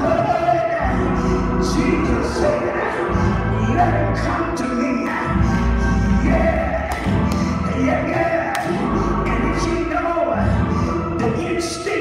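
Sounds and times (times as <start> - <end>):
group singing gospel: 0.0 - 10.8.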